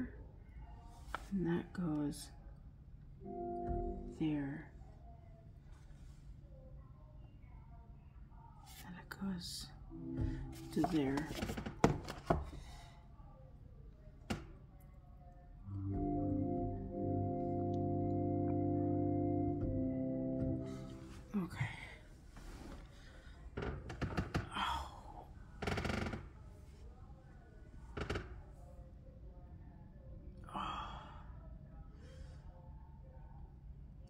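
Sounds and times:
organ chord: 3.2 - 4.4, 9.9 - 10.8, 15.7 - 21.3
breathy sighs: 30.5 - 31.4.

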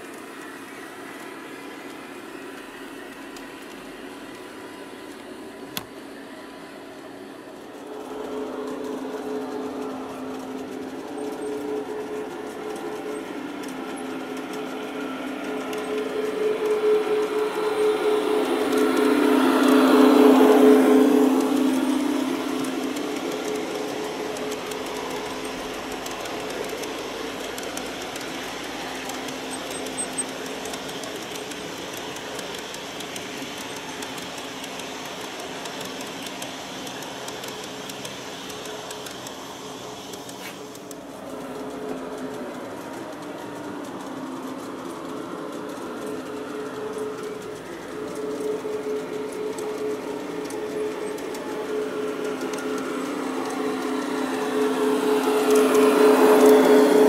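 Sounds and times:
model train motor hum: 0.0 - 57.0
wheels rushing on rail: 0.0 - 57.0.

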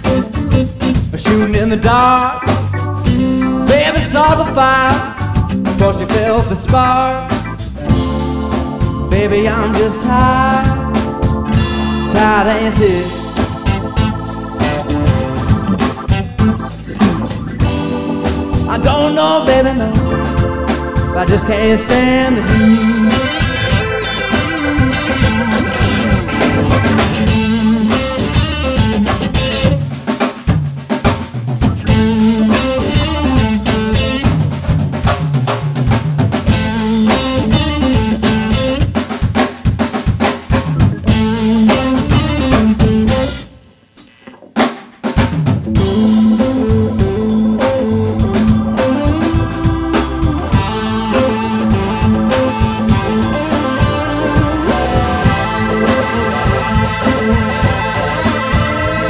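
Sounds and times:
electric bass: 0.0 - 30.0, 31.1 - 39.2, 39.9 - 44.5, 45.2 - 59.0
drum kit: 0.0 - 59.0
electric guitar: 0.0 - 59.0.

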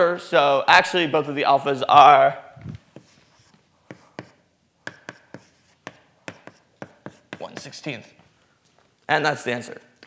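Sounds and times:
chalk tapping on blackboard: 2.9 - 8.2.

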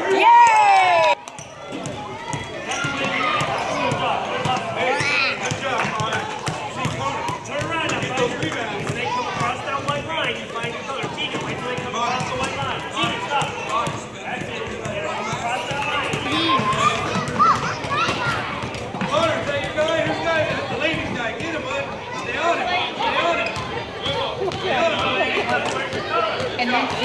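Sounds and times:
children and adults chattering: 1.2 - 27.0
basketballs bouncing on hardwood: 5.4 - 21.6.

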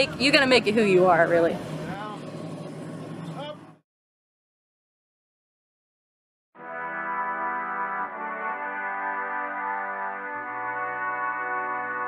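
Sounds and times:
distant voices calling: 0.0 - 3.8.

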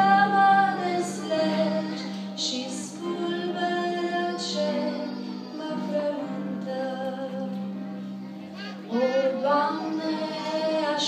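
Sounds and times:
woman singing a hymn: 0.0 - 7.7, 8.9 - 11.0
small instrumental ensemble: 0.0 - 11.0.

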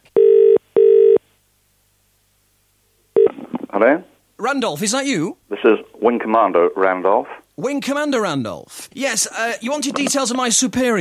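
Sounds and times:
telephone ringing tone: 0.2 - 1.2.

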